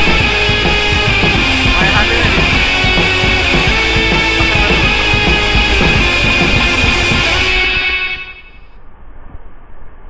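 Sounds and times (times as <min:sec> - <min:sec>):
sea surf breaking on concrete: 0:00.0 - 0:08.2
background music: 0:00.0 - 0:08.6.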